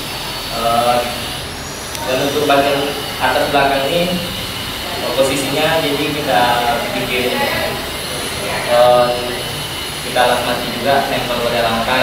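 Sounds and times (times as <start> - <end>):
steady background noise: 0.0 - 12.0
man saying eh: 2.0 - 9.4.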